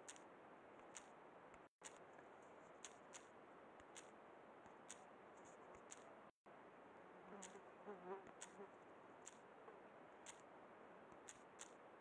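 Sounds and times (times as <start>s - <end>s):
faint background hiss: 0.0s - 12.0s
faint high ticks: 7.4s - 7.6s, 8.2s - 8.6s, 10.2s - 10.4s.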